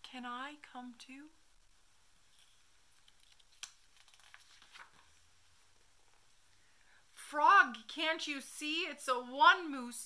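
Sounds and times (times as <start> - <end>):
paper page turning: 2.2 - 5.3.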